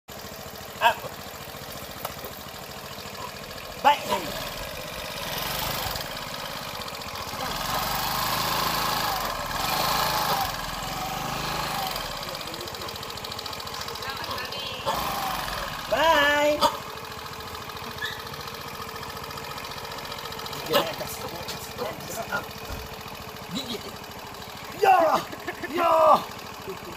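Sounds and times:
scooter engine: 0.1s - 26.9s.

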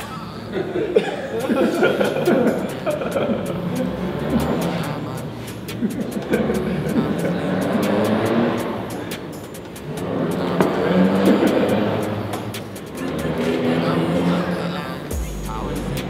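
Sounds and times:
voices talking: 0.0s - 16.0s
steady low hum: 8.6s - 16.0s.

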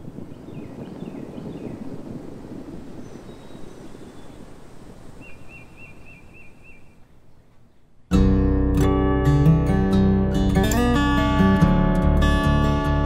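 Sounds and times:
wind: 0.0s - 8.8s
bird chirping: 0.3s - 2.0s, 3.0s - 4.6s, 5.2s - 8.1s.

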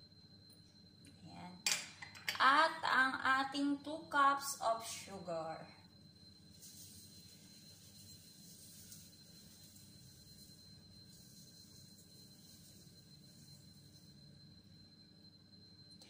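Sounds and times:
sugar pouring onto apples: 6.4s - 14.2s.

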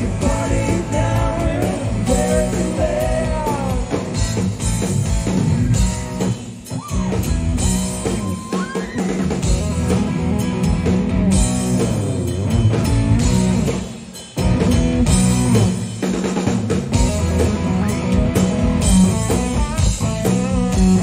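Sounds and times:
live rock band playing: 0.0s - 21.0s.

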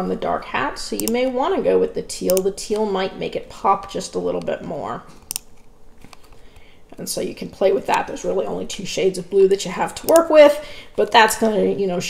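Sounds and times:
person speaking: 0.0s - 5.4s, 6.9s - 12.0s.

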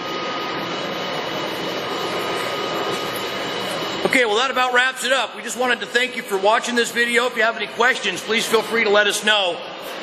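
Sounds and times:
faint high whining tones: 0.0s - 10.0s
machinery whirring: 0.0s - 10.0s.

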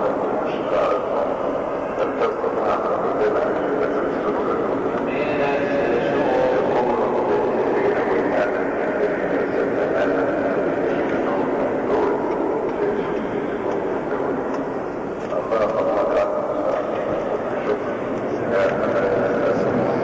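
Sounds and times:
congregation voices: 0.0s - 20.0s
man speaking over microphone: 0.0s - 20.0s.

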